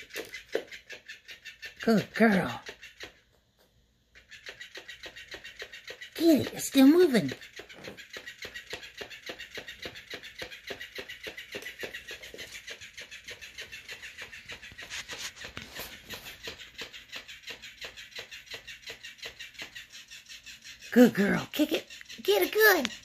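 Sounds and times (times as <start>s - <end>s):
toy motor tail flapping: 0.0s - 3.4s, 4.0s - 23.0s
cat scuffling with toy: 6.4s - 18.5s.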